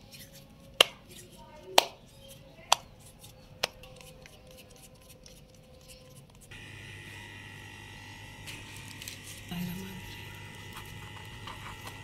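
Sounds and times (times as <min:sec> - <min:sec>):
hands kneading dough: 0:00.0 - 0:06.5
low hum with thin whine: 0:06.5 - 0:12.0.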